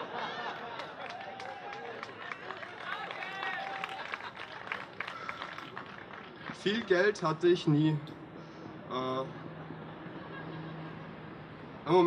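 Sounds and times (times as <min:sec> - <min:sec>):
scattered hand claps: 0:00.8 - 0:06.8.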